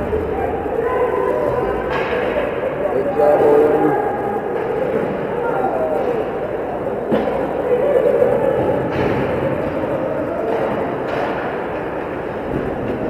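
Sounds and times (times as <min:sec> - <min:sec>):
spectators murmuring and calling: 0:00.0 - 0:13.0
hockey sticks and puck knocking: 0:08.8 - 0:13.0.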